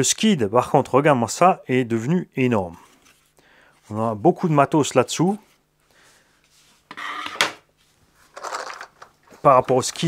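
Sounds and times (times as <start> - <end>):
plastic parts scraping and clattering: 8.2 - 10.0.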